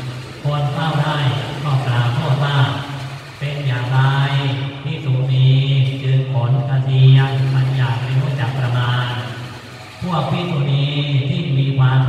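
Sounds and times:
man chanting in low voice: 0:00.4 - 0:09.4, 0:10.0 - 0:12.0.

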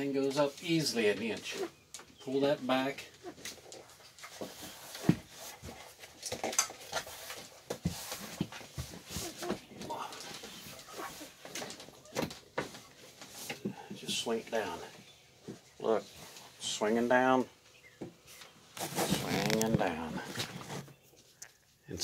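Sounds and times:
cloth rubbing on microphone: 0:07.0 - 0:09.7, 0:10.5 - 0:11.4, 0:18.8 - 0:20.9.

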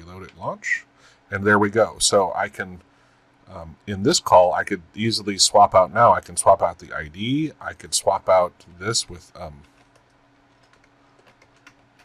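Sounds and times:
keyboard typing: 0:09.6 - 0:12.0.

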